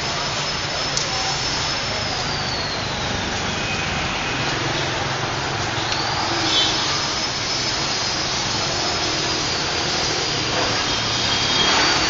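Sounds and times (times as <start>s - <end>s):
street traffic noise: 0.0s - 12.0s.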